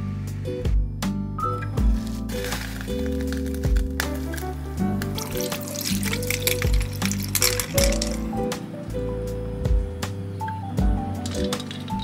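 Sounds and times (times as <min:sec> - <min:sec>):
background music with steady beat: 0:00.0 - 0:12.0
ice cubes clinking in metal bowl: 0:02.3 - 0:08.5, 0:11.2 - 0:12.0.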